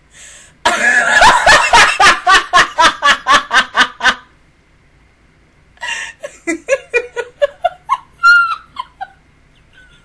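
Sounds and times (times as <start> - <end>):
woman squealing laughter: 5.9 - 10.0.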